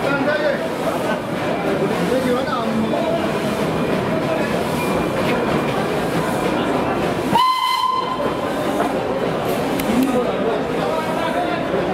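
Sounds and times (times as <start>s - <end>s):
steam locomotive hissing: 0.0s - 11.9s
train whistle blast: 7.3s - 8.4s.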